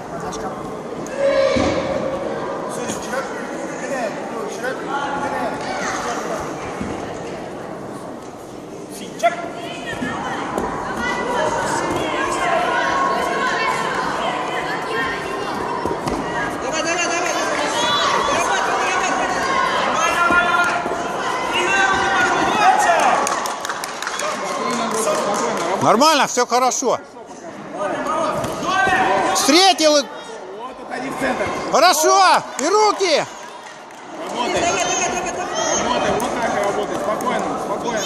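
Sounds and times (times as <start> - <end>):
voices calling out echoing: 0.0 - 7.4, 8.8 - 38.0
loud shout: 17.5 - 23.5, 31.7 - 33.6.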